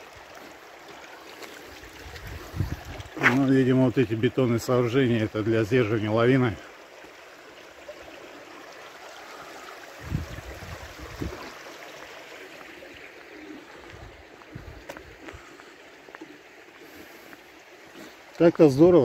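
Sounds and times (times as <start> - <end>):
running water rushing: 0.0 - 19.0.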